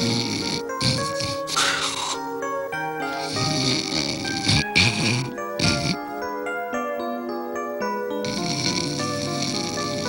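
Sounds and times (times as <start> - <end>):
person snoring: 0.0 - 2.2, 3.1 - 6.0, 8.2 - 10.0
music with held notes: 0.0 - 10.0.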